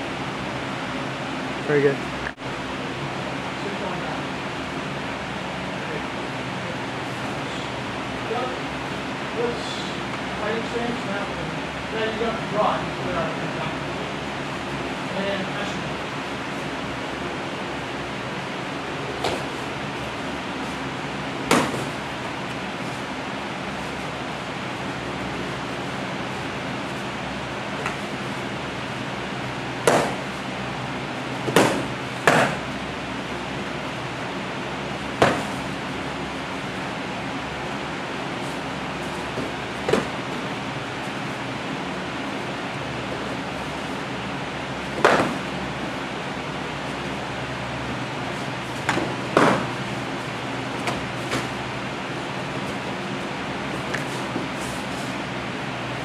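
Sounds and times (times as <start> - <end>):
padded sticks striking: 21.4 - 22.0, 29.8 - 30.3, 31.4 - 32.7, 35.2 - 35.7, 39.2 - 40.4, 44.9 - 45.6, 48.8 - 49.8.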